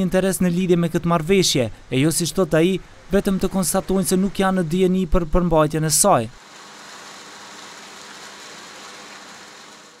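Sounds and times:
outdoor ambience hiss: 0.0s - 10.0s.

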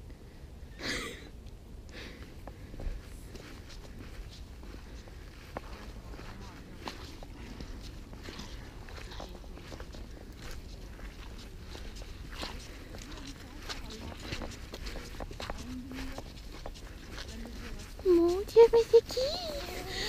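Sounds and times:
steady low rumble: 0.0s - 20.0s
footsteps on soil and crops: 2.2s - 20.0s.

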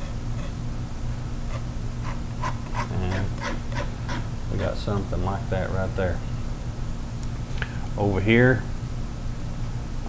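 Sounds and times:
low electrical hum: 0.0s - 10.0s
palette knife scraping canvas: 1.5s - 4.7s.

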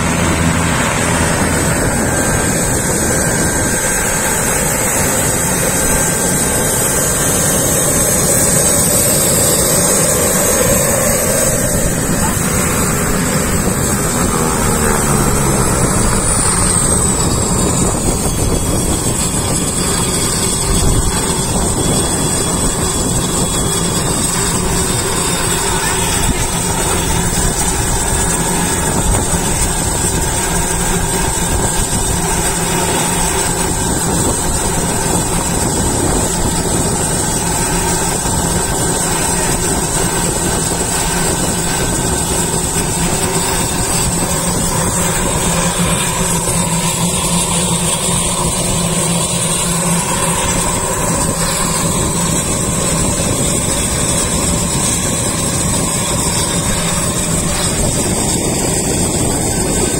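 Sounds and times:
turboprop engine idling: 0.0s - 59.9s.

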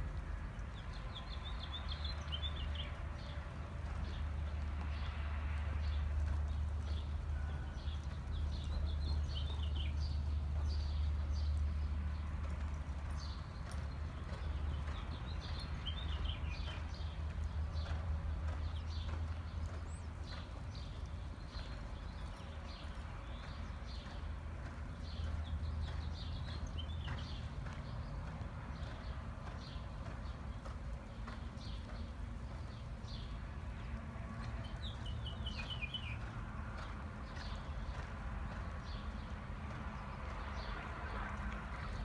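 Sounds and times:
hoofbeats on soft dirt: 0.0s - 42.0s.

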